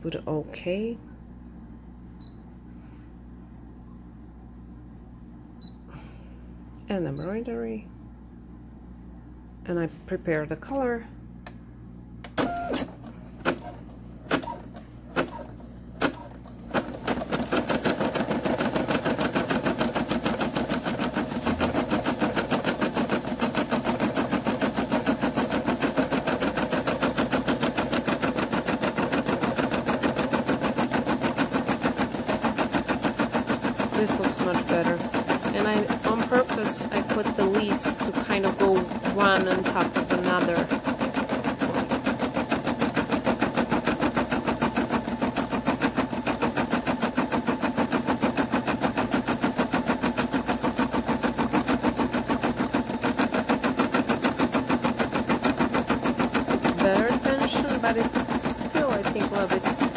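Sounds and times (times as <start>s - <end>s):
embroidery machine stitching: 12.4s - 59.9s.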